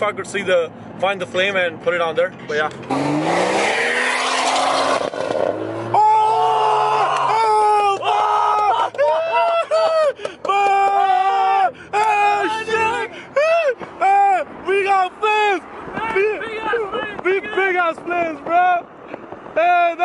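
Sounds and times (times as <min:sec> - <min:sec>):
car engine revving: 0:02.7 - 0:06.3
person calling out wordlessly: 0:10.5 - 0:17.2.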